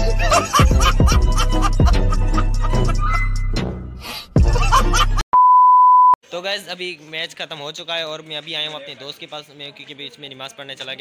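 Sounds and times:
loud background music: 0:00.0 - 0:05.2
high-pitched test tone beep: 0:05.4 - 0:06.2.

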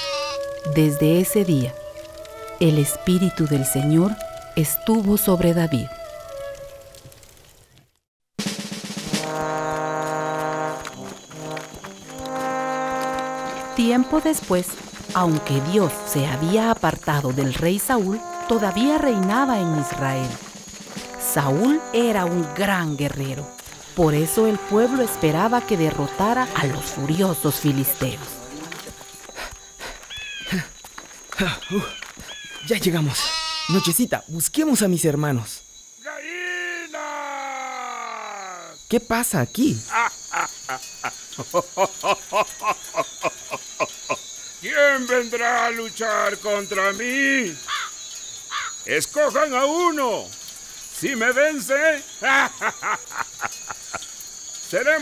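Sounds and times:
sheep bleating: 0:00.0 - 0:00.5, 0:33.2 - 0:33.9
brass fanfare: 0:08.4 - 0:29.7
man speaking: 0:28.2 - 0:29.0.

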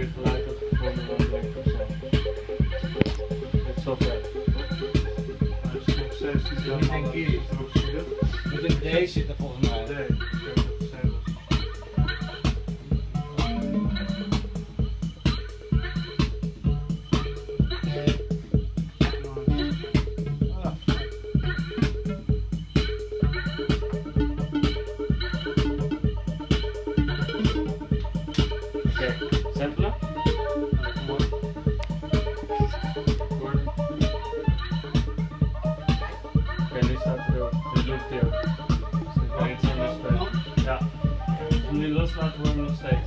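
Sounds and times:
kick drum: 0:00.0 - 0:43.0
repeating synth lines: 0:13.4 - 0:14.8.

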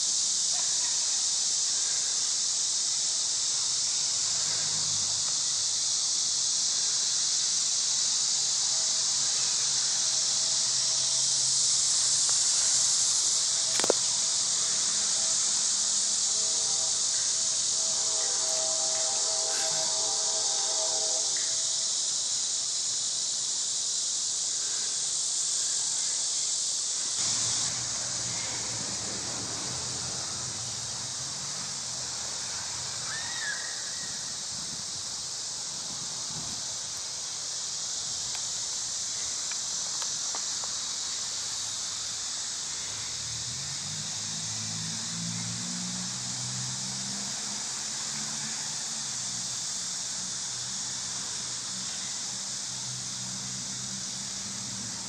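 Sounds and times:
insect chorus drone: 0:00.0 - 0:55.0.

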